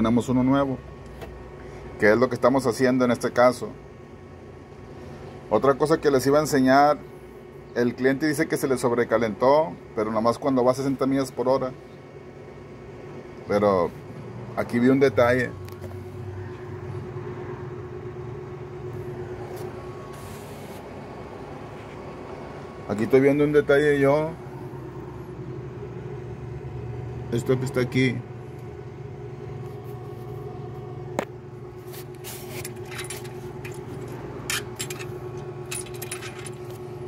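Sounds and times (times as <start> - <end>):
low mechanical hum: 0.0 - 37.0.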